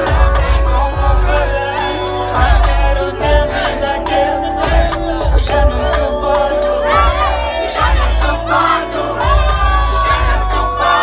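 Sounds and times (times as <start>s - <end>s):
crowd shouting and singing: 0.0s - 11.0s
loud music with pulsing bass: 0.0s - 11.0s.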